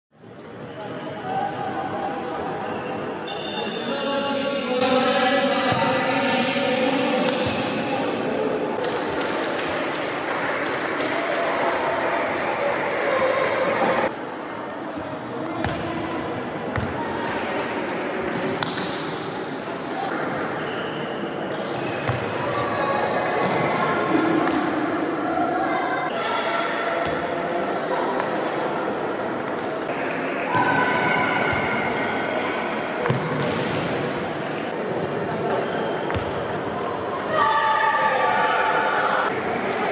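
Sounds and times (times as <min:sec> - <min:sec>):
chatter of many voices: 0:00.2 - 0:39.9.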